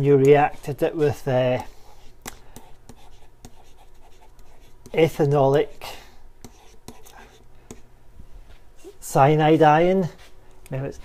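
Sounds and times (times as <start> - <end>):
pen scratching on whiteboard: 0.2 - 5.8, 6.4 - 7.8.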